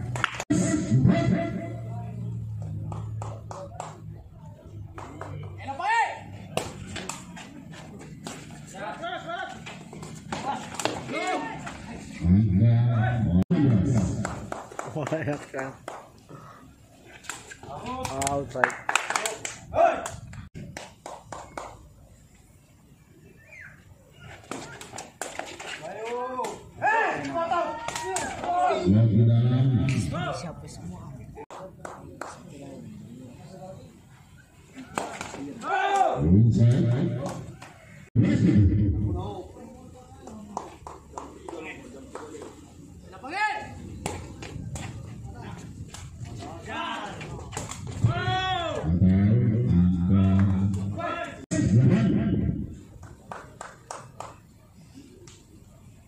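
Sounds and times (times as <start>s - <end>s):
people shouting and calling: 5.6s - 6.4s, 8.8s - 12.2s, 25.8s - 29.1s, 34.8s - 38.4s, 46.4s - 52.6s
people shouting: 10.4s - 11.7s, 26.1s - 28.9s, 35.6s - 37.3s, 48.0s - 49.0s
loud deep voice: 28.7s - 30.3s, 36.2s - 37.3s, 48.6s - 52.6s.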